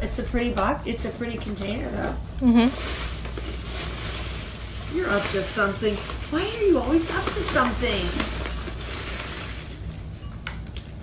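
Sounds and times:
tissue paper rustling: 0:02.0 - 0:10.9.

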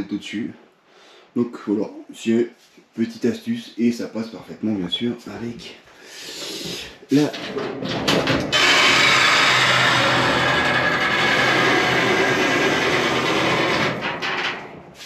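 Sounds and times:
garage door motor running: 0:07.4 - 0:15.0.

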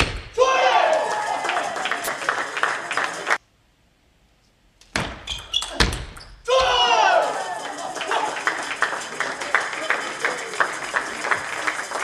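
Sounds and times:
person shouting: 0:00.4 - 0:01.5, 0:06.5 - 0:08.4.

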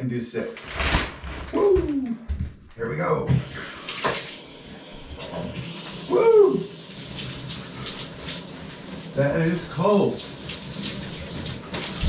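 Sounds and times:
person exclaiming: 0:01.5 - 0:02.3, 0:06.1 - 0:06.7
shower spray running: 0:03.6 - 0:12.0.

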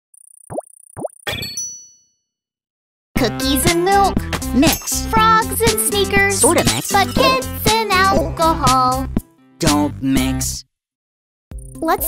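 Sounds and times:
rising bloops: 0:06.4 - 0:07.4.

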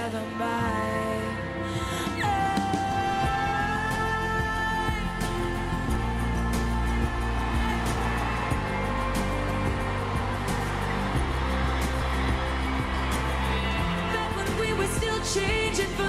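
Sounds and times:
crowd noise: 0:02.4 - 0:16.0.

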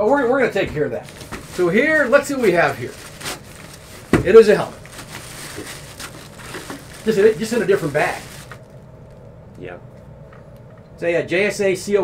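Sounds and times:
drawstring bag rustling: 0:01.1 - 0:08.7.

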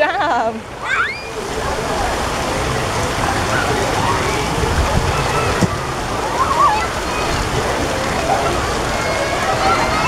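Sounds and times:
faint voices: 0:00.0 - 0:10.0
running and splashing water: 0:00.0 - 0:10.0.

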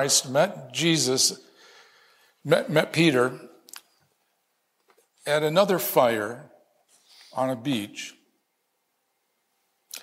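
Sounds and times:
man talking: 0:00.0 - 0:01.5, 0:02.4 - 0:03.7, 0:05.2 - 0:06.6, 0:07.2 - 0:08.2
short sharp breath: 0:01.4 - 0:02.4, 0:06.9 - 0:07.4.

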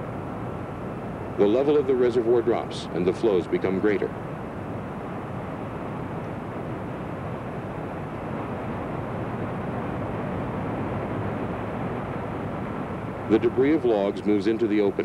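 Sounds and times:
helicopter in flight: 0:00.0 - 0:15.0.

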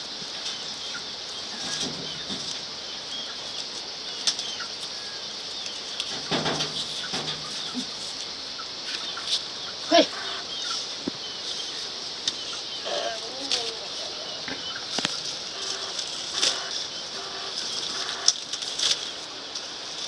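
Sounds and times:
dry husks rustling and tearing: 0:10.7 - 0:20.0.

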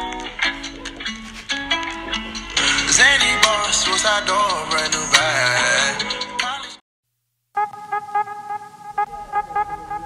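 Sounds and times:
held horn-like tone: 0:07.6 - 0:10.0.

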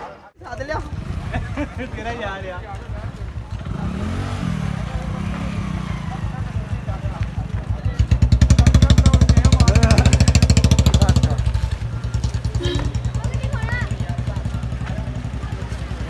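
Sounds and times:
motorcycle engine running: 0:00.4 - 0:16.0.

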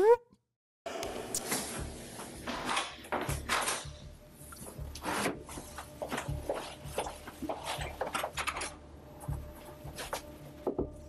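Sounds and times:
rustling and scraping: 0:01.4 - 0:10.5.

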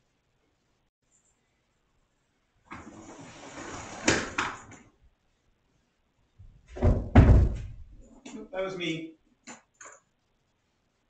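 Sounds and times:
heavy thuds: 0:06.4 - 0:08.0.

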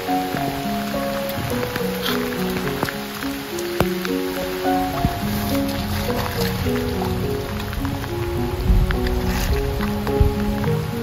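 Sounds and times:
rain falling: 0:00.0 - 0:11.0
slow melodic background music: 0:00.0 - 0:11.0.

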